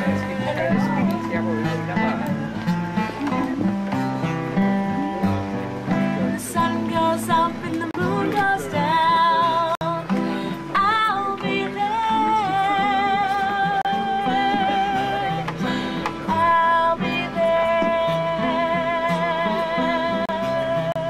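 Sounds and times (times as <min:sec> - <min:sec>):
acoustic guitar strumming: 0:00.0 - 0:21.0
woman singing: 0:06.2 - 0:21.0.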